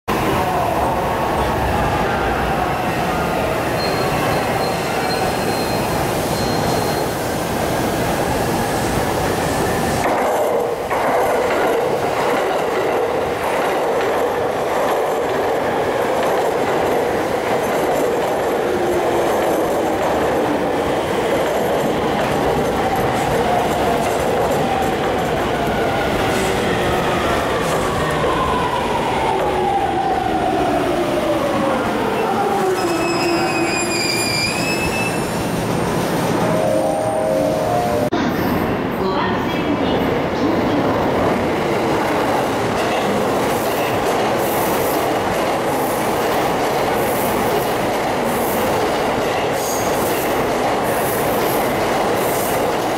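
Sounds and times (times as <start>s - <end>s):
train brake squeal: 3.8s - 7.2s, 32.8s - 35.4s.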